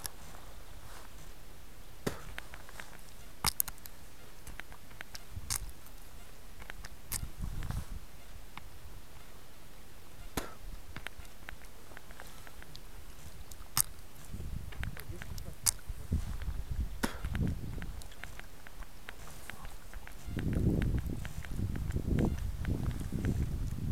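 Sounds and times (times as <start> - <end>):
faint background noise: 0.0 - 23.9.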